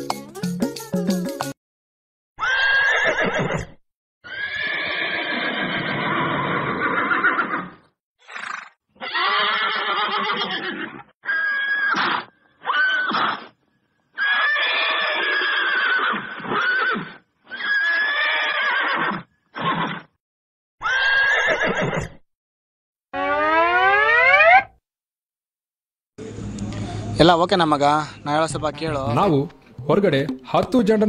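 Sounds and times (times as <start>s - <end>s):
horse whinnying: 2.4s - 20.1s, 20.8s - 22.2s.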